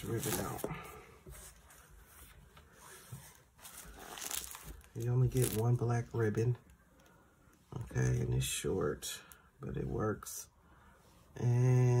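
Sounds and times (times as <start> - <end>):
paper pages rustling and turning: 0.0 - 5.9.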